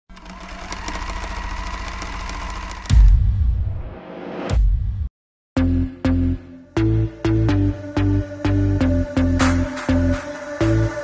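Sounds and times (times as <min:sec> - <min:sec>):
fast mechanical rattle: 0:00.1 - 0:03.1.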